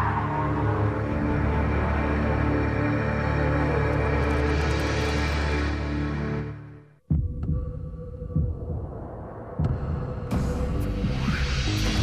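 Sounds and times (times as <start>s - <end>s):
deep heartbeat-like thuds: 7.1s - 10.8s.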